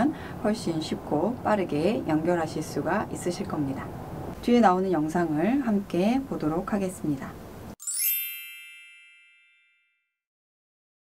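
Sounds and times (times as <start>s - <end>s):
faint bell-like chime: 7.8s - 10.2s.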